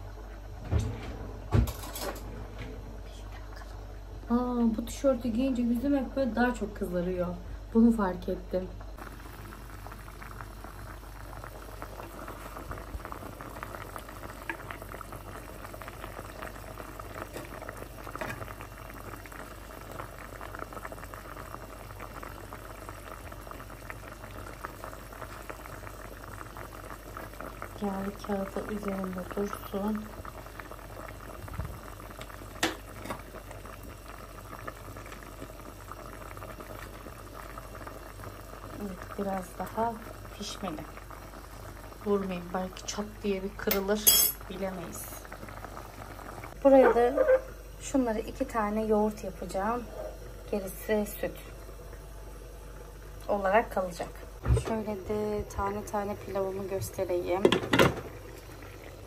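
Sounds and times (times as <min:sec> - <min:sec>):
stew bubbling in a pot: 0:00.0 - 0:59.0.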